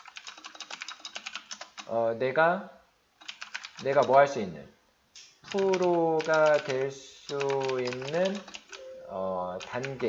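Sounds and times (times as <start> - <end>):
fast typing on computer keyboard: 0.0 - 1.9, 3.2 - 4.2, 5.5 - 8.8, 9.6 - 10.0
person speaking: 1.8 - 2.8, 3.8 - 10.0.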